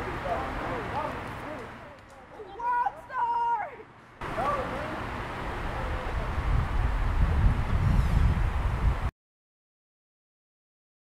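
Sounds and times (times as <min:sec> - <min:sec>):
wind rumbling on microphone: 0:05.4 - 0:09.1.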